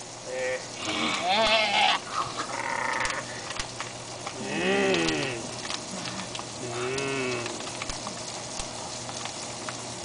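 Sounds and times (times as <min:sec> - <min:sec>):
children moaning: 0:00.3 - 0:03.3, 0:04.4 - 0:07.6.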